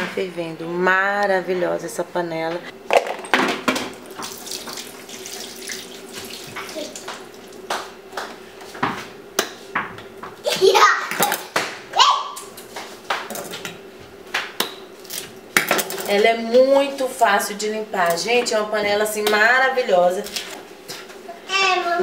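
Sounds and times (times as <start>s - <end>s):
water splashing and sloshing: 4.0s - 7.7s
child's voice: 6.6s - 7.0s, 10.5s - 11.2s, 21.5s - 22.0s.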